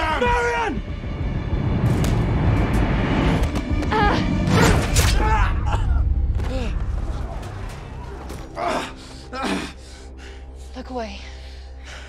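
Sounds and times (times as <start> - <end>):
film music: 0.0 - 12.0.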